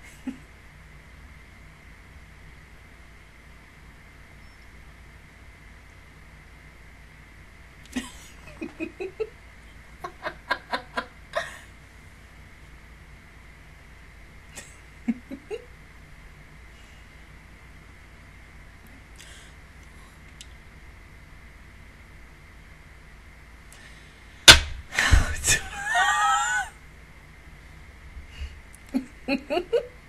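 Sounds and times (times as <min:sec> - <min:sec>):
faint room hiss: 0:00.0 - 0:30.0
faint steady hum: 0:00.0 - 0:30.0
woman's stifled laughter: 0:07.9 - 0:09.3, 0:10.0 - 0:11.7, 0:14.6 - 0:15.7, 0:25.0 - 0:26.8, 0:28.9 - 0:30.0
loud smack: 0:24.4 - 0:25.6.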